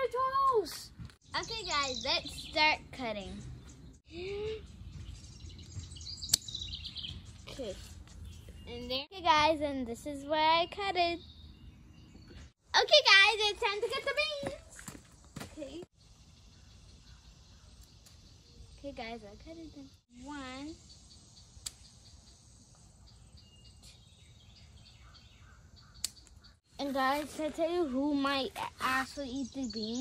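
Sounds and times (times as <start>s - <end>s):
birds chirping: 0.0s - 30.0s
quiet outdoor background: 0.0s - 30.0s.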